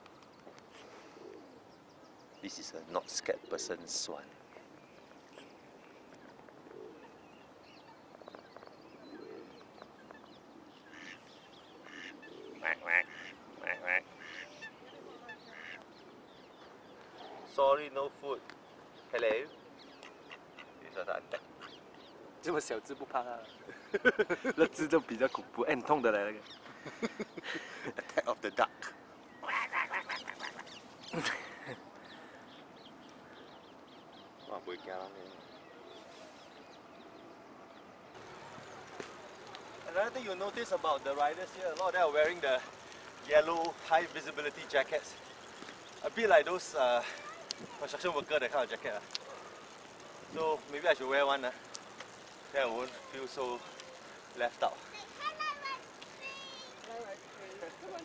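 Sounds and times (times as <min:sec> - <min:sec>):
small birds chirping: 0:00.0 - 0:58.0
waterfowl calling: 0:09.0 - 0:17.5, 0:19.8 - 0:22.4, 0:28.8 - 0:33.5
ducks quacking: 0:10.8 - 0:15.9, 0:28.8 - 0:31.8.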